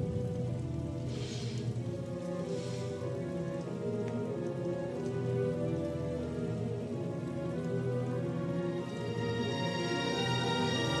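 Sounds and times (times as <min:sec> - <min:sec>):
film score of held tones: 0:00.0 - 0:11.0
steady hiss: 0:00.0 - 0:11.0.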